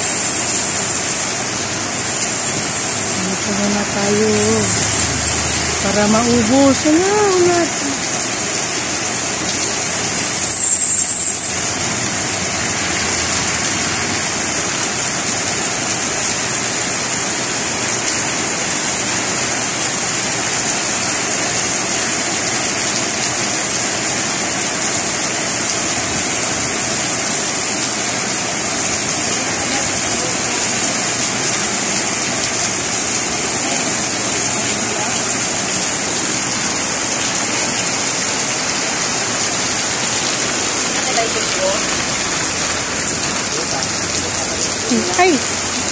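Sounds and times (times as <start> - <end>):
heavy rain on street: 0.0 - 45.9.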